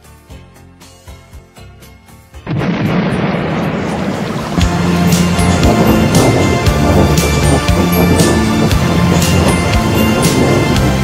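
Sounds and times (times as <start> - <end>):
music: 0.0 - 11.0
thunderclap rumble: 2.4 - 11.0.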